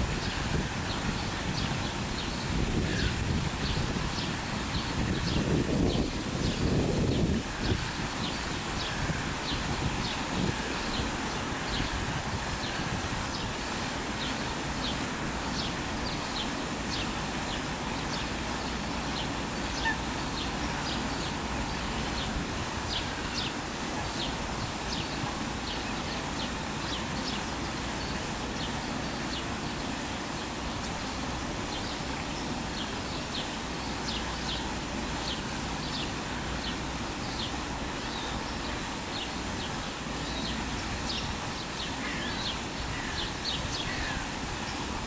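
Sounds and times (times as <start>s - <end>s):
wind rumble on microphone: 0.0s - 17.5s.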